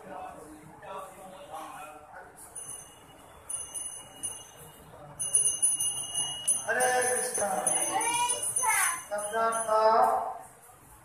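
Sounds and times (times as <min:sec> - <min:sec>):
voices: 0:00.0 - 0:10.9
hand bell ringing rapidly: 0:02.6 - 0:10.0.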